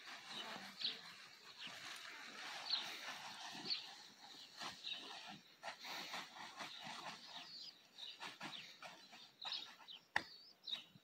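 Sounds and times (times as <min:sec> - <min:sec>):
plastic tarp rustling: 0:00.0 - 0:09.3.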